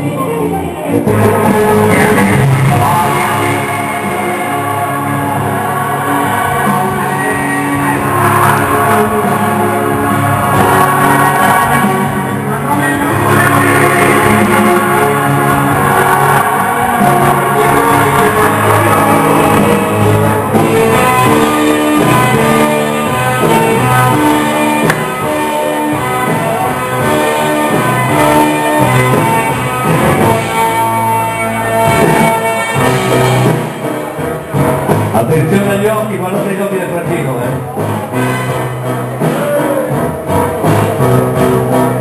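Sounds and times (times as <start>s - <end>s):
loud rock music with guitar: 0.0s - 42.0s.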